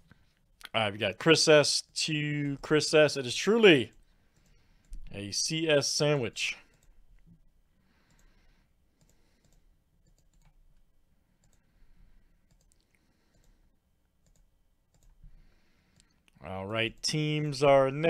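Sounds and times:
computer mouse clicks: 0:08.0 - 0:08.4, 0:09.0 - 0:10.8, 0:11.4 - 0:11.7, 0:12.4 - 0:13.6, 0:14.2 - 0:16.4.

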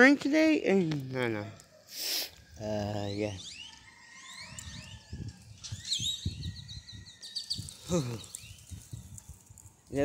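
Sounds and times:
birds chirping and whistling: 0:02.6 - 0:10.0.

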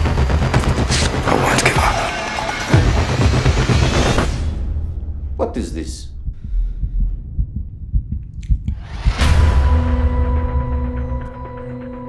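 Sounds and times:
low heartbeat-like thuds: 0:06.1 - 0:10.0.

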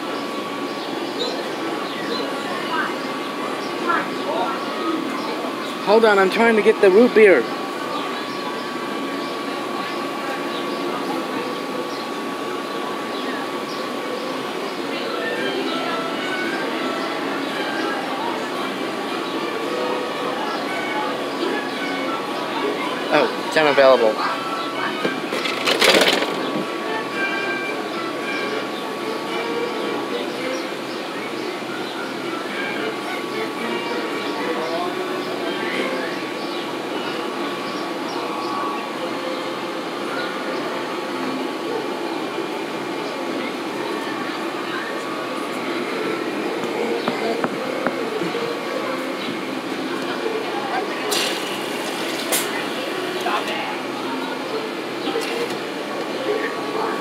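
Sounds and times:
faint music: 0:00.0 - 0:57.0
people talking indistinctly: 0:00.0 - 0:57.0.

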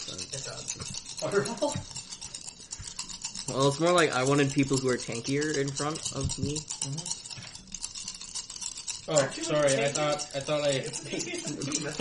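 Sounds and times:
dice rattling in a hand: 0:00.0 - 0:12.0.

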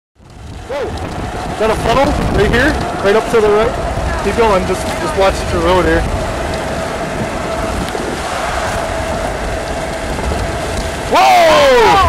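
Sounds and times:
low road rumble: 0:00.2 - 0:12.0
rain on car: 0:00.2 - 0:12.0
tyre hiss on wet road: 0:00.4 - 0:11.9.

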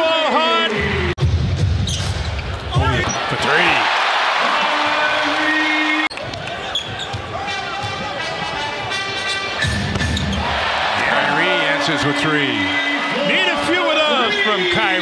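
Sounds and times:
crowd noise: 0:02.6 - 0:15.0
crowd cheering: 0:02.7 - 0:15.0.

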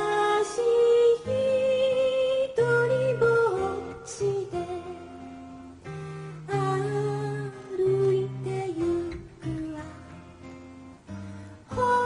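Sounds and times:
person singing: 0:00.0 - 0:05.2, 0:06.5 - 0:10.2, 0:11.6 - 0:12.0
woman singing: 0:00.0 - 0:05.4, 0:06.4 - 0:10.4, 0:11.4 - 0:12.0
acoustic guitar strumming: 0:00.0 - 0:12.0.

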